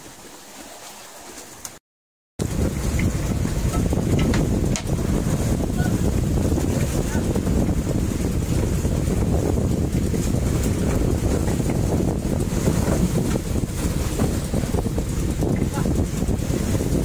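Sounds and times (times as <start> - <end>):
boat engine running: 2.4 - 17.0
water under boat: 2.4 - 17.0
wind rumbling on microphone: 2.4 - 17.0.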